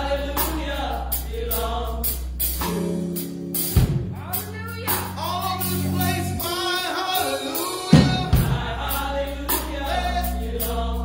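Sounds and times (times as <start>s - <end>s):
gospel group singing: 0.0s - 3.2s, 4.2s - 11.0s.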